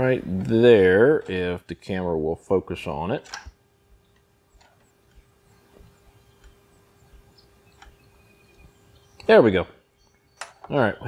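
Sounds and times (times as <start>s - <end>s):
faint steady hum: 0.0s - 11.0s
soft clicks: 3.3s - 9.3s.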